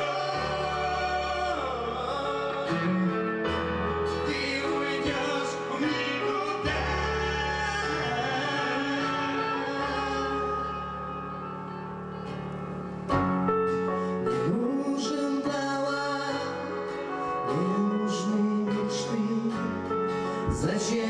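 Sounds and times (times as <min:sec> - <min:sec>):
sliding melody line: 0:00.0 - 0:19.4
acoustic guitar: 0:00.0 - 0:21.0
electric guitar: 0:00.0 - 0:21.0
keyboard: 0:00.0 - 0:21.0.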